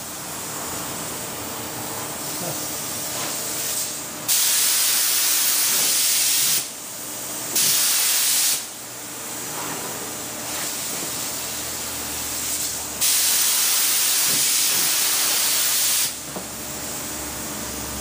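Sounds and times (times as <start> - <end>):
spray gun hissing bursts: 2.3 - 6.7, 7.5 - 8.7, 12.3 - 16.2.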